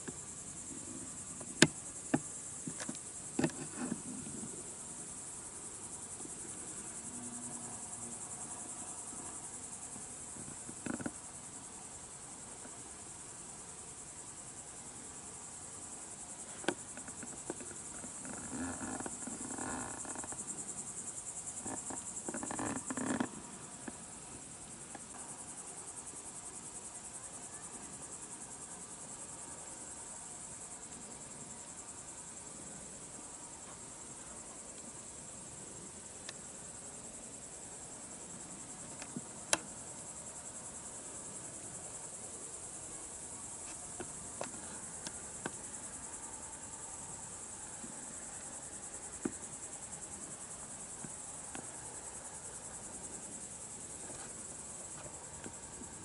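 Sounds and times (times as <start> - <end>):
crickets trilling: 0.0 - 56.0.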